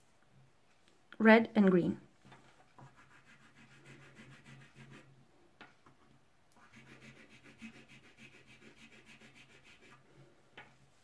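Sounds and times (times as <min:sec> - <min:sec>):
pastel scratching on paper: 0:02.5 - 0:05.2, 0:06.6 - 0:10.1.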